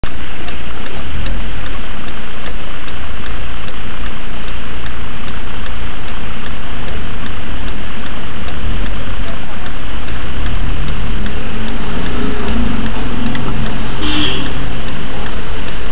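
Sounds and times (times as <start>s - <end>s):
faint ticking: 0.0s - 15.9s
low engine rumble: 0.0s - 15.9s
car cabin noise hiss: 0.1s - 15.9s.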